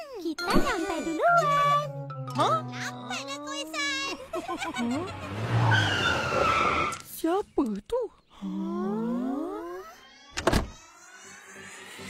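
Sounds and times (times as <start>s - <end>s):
cartoon car rushing past: 4.6s - 7.0s.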